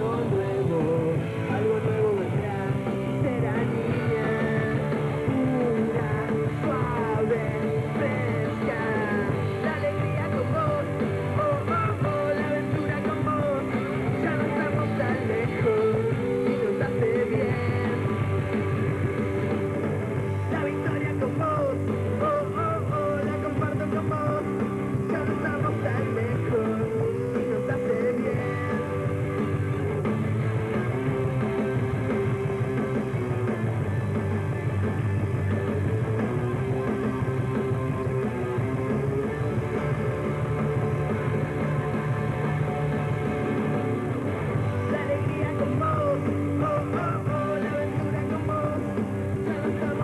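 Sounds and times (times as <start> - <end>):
electric guitar: 0.0 - 50.0
live rock band: 0.0 - 50.0.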